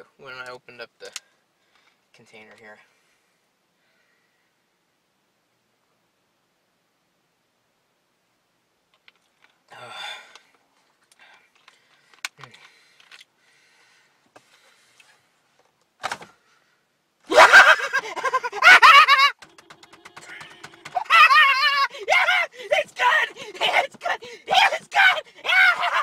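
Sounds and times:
man yelling and shrieking: 0:17.3 - 0:26.0
man short vocal sound: 0:19.4 - 0:26.0.

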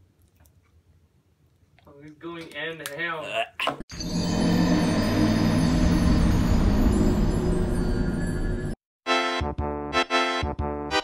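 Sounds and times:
dark music sting with deep chord: 0:04.0 - 0:08.8.

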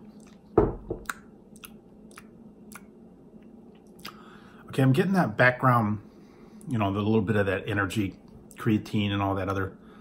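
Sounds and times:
lip smacks and tongue clicks: 0:00.0 - 0:04.2.

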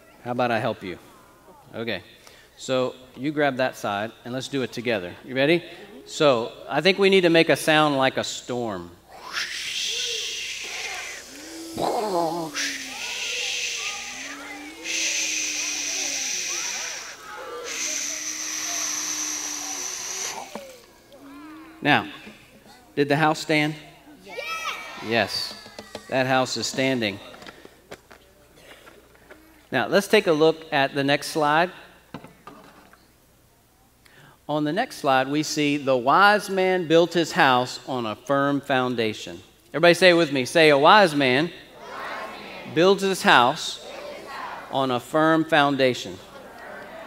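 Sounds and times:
people making whooshing hisses: 0:09.1 - 0:21.4, 0:43.3 - 0:44.8
people making wind cries: 0:09.1 - 0:22.5.

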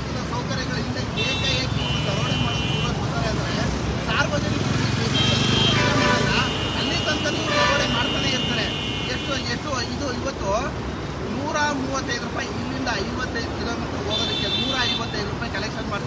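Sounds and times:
vehicle engines rumbling: 0:00.0 - 0:16.0
voices: 0:00.0 - 0:16.0.

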